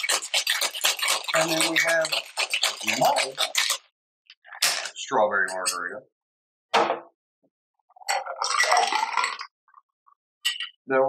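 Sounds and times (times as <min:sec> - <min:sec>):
ice clinking in metal shaker: 0:00.0 - 0:03.8, 0:08.1 - 0:09.5
drink pouring into glass: 0:08.0 - 0:09.8.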